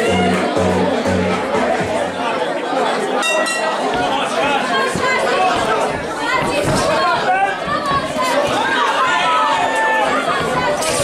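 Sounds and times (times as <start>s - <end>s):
crowd chatter and calling out: 0.0s - 11.0s.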